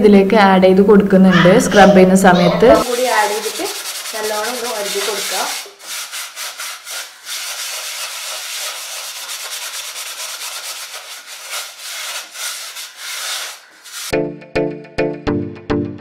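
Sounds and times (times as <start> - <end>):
scrubber scouring a saucepan: 2.8 - 14.1.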